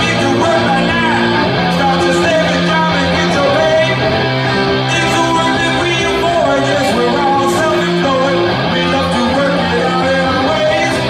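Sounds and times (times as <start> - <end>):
electric guitar playing rock: 0.0 - 11.0
person singing: 0.0 - 11.0.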